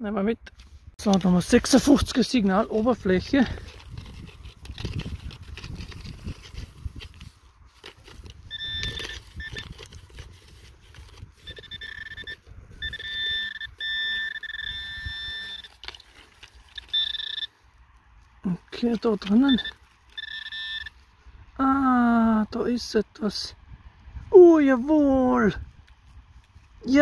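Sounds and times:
soil clods crumbling and scraping: 0:00.5 - 0:21.0
pinpointer electronic alert tone: 0:08.5 - 0:09.7, 0:11.5 - 0:15.7, 0:16.8 - 0:17.5, 0:19.3 - 0:20.9.

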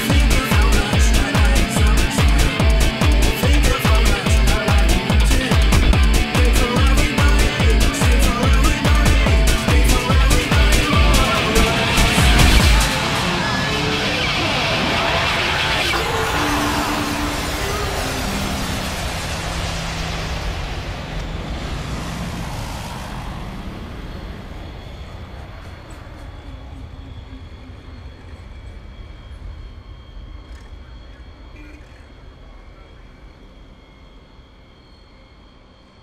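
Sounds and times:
whooshing noise sweep: 0:00.0 - 0:27.7
held low synth notes: 0:00.0 - 0:28.0
low rumbling noise: 0:00.0 - 0:34.7.

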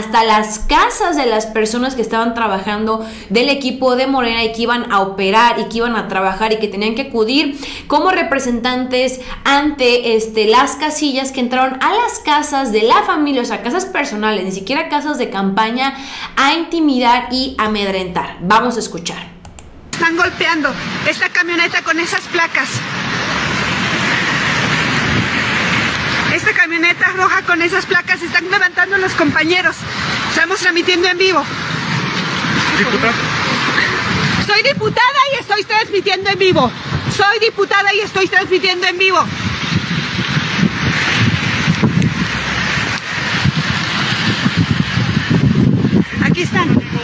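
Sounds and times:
loud rushing noise: 0:19.6 - 0:37.4, 0:38.1 - 0:47.0
steady hiss: 0:19.9 - 0:47.0
wind buffeting microphone: 0:19.9 - 0:47.0
microphone handling noise: 0:36.4 - 0:37.2, 0:39.2 - 0:47.0.

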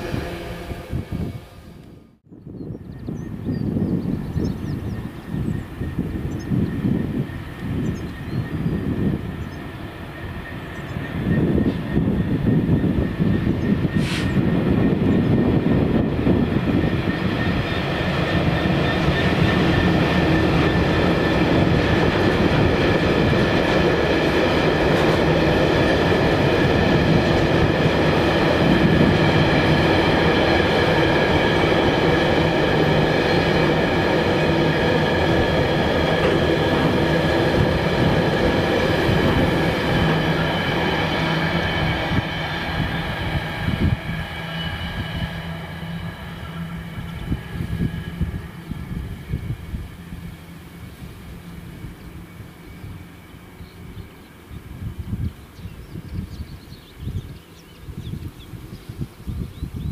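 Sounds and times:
train wagons rumbling on rails: 0:02.6 - 0:59.9
short sharp squeal: 0:14.0 - 0:14.4.

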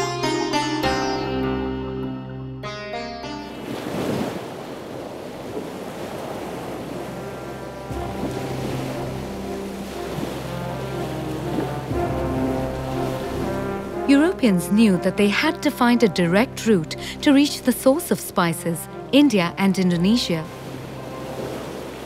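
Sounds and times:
background music with held notes: 0:00.0 - 0:04.1, 0:06.2 - 0:22.0
ocean waves washing: 0:03.2 - 0:22.0.

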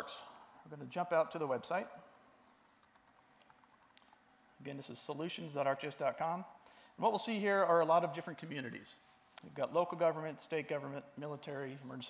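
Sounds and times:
fingers tapping on touchscreen: 0:02.8 - 0:04.2.

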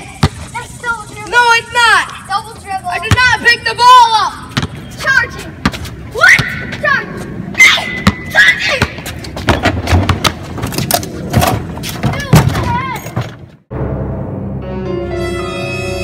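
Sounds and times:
boys yelling excitedly: 0:00.0 - 0:09.0
basketball thuds on concrete: 0:00.2 - 0:00.4, 0:08.8 - 0:10.4.

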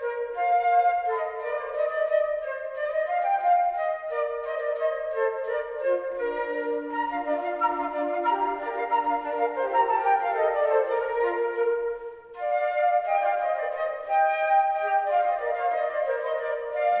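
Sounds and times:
flute ensemble playing: 0:00.0 - 0:17.0.

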